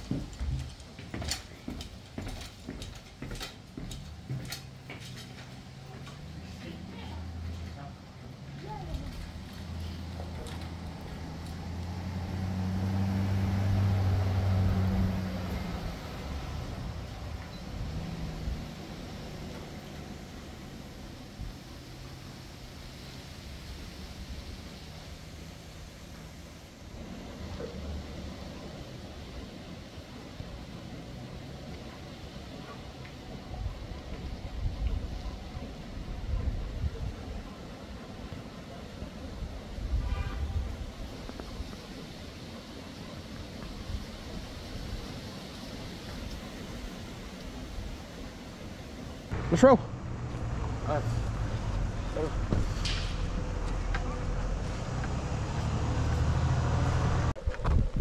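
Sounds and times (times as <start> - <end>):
vehicle engine humming: 3.5 - 58.0
low rumbles: 48.8 - 58.0.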